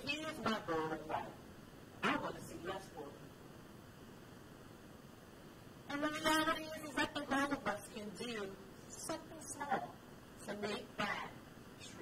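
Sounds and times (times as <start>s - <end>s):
woman speaking: 0.0s - 1.4s, 2.0s - 3.2s, 5.9s - 12.0s.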